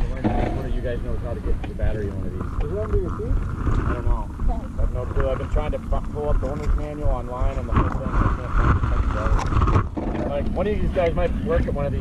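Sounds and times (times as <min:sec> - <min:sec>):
people talking: 0:00.0 - 0:09.5, 0:10.2 - 0:12.0
steady low rumble: 0:00.0 - 0:12.0.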